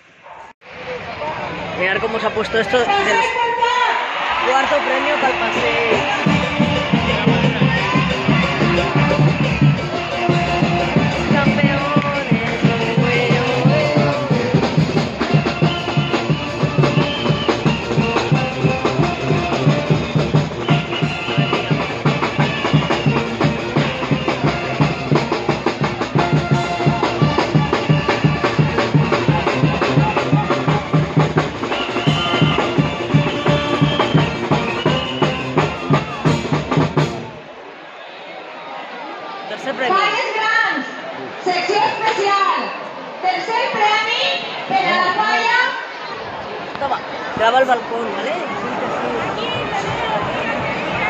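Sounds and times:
crowd voices: 0.0s - 51.0s
loud music with drum beat: 4.3s - 37.4s.

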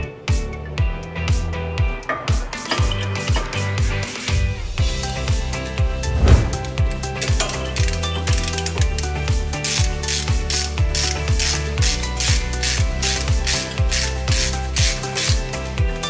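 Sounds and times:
background music with steady beat: 0.0s - 16.0s
hand ratchet clicking: 7.8s - 15.4s.

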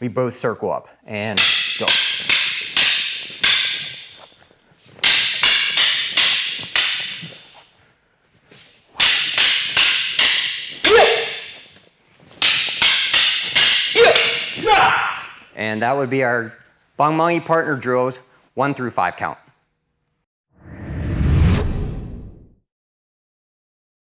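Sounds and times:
wooden sticks clacking: 1.4s - 7.8s, 8.9s - 15.6s.

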